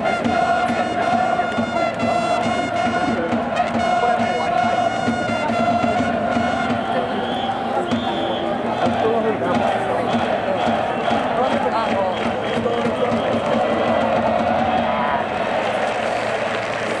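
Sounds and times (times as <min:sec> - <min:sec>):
faint regular beat: 0:00.0 - 0:16.4
crowd shouting and chanting: 0:00.0 - 0:17.0.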